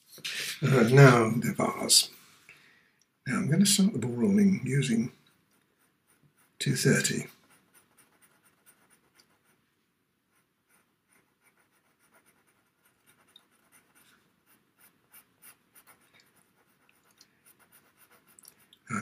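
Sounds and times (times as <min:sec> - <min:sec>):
pencil scratching on paper: 0:04.2 - 0:09.6, 0:10.3 - 0:19.0.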